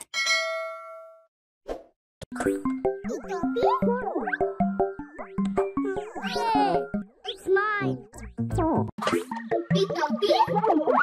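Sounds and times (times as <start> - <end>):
notification bell ding: 0.2 - 1.2.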